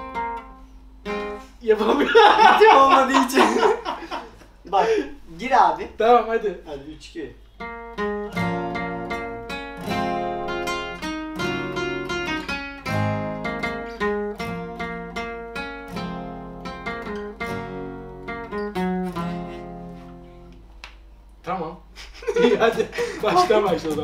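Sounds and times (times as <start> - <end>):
acoustic guitars playing: 0.0 - 5.3, 7.4 - 24.0.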